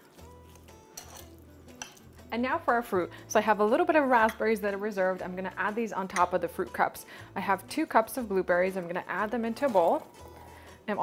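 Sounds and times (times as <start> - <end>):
quiet background music: 0.0 - 11.0
fork mashing berries in bowl: 0.1 - 2.3
fork clinking against glass: 0.9 - 2.2.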